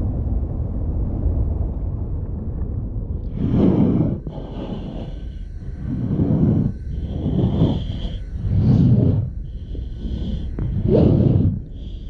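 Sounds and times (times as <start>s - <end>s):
heavy breathing through gas mask: 3.2s - 12.0s.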